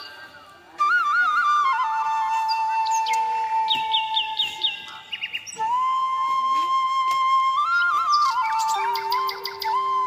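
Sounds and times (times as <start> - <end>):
flute music: 0.0 - 10.0
bird chirps: 2.4 - 5.7, 7.7 - 10.0.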